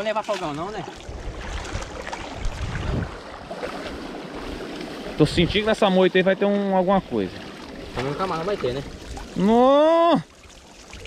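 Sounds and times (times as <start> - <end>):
water swishing and sloshing: 0.0 - 11.0
wind rumbling on microphone: 0.8 - 5.7.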